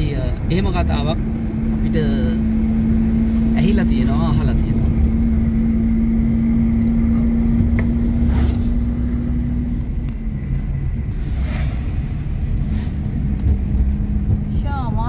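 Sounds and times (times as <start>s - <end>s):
car engine hum: 0.0s - 15.0s
road rumble: 0.0s - 15.0s.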